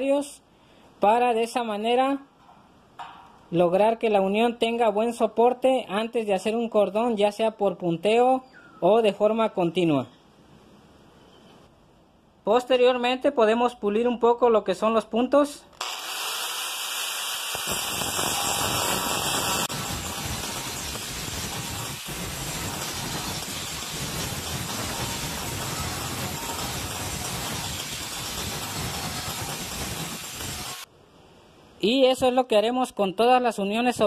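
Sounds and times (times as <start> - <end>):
angle grinder grinding steel: 15.8 - 30.8.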